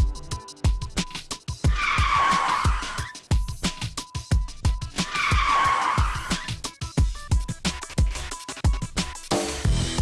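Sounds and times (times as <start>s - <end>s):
action music with fast beat: 0.0s - 10.0s
car tyres screeching: 1.6s - 3.3s, 4.9s - 6.6s.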